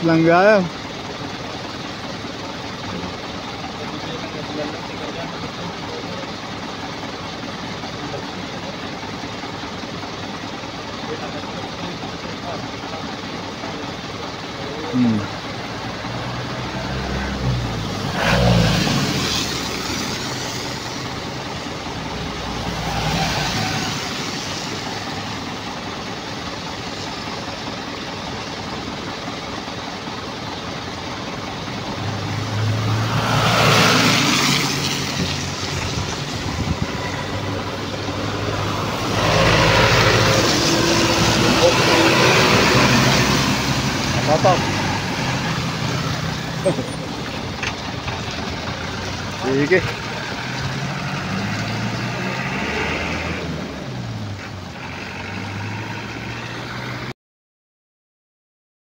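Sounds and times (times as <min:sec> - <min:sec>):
truck engines idling: 0:00.0 - 0:57.1
vehicles passing on wet road: 0:00.0 - 0:57.1.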